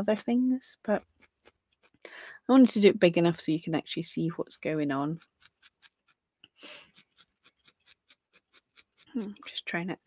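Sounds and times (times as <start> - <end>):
felting needle poking wool: 0.0 - 10.0.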